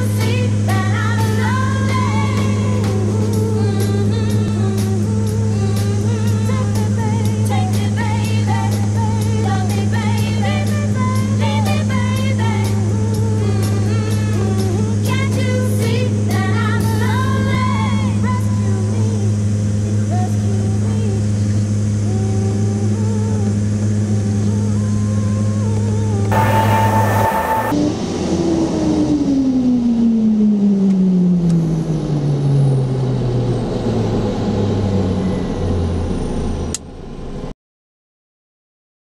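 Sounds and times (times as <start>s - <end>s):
turboprop engines droning: 0.0s - 37.4s
song music: 26.3s - 27.9s.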